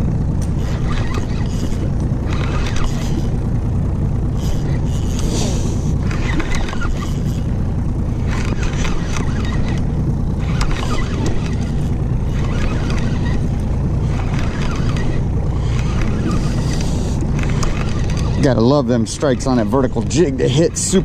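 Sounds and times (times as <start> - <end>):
outboard engine idling: 0.0 - 21.0
fishing reel cranking: 0.4 - 3.6, 4.3 - 21.0.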